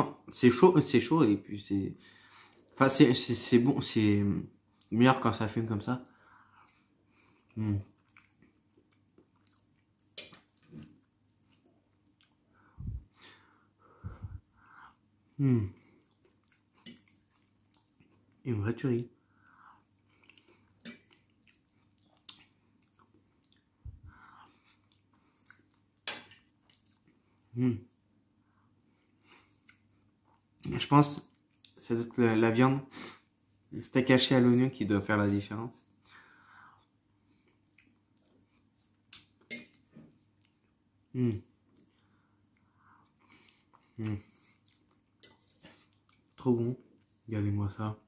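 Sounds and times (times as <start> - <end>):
person chewing wetly: 6.6 - 12.6, 15.8 - 18.4, 19.5 - 27.5, 36.7 - 47.3.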